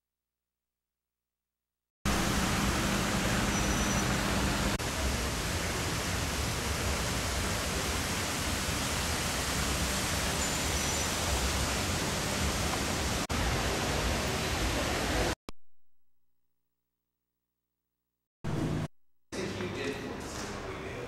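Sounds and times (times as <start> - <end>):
street ambience rumble and hiss: 2.1 - 15.4.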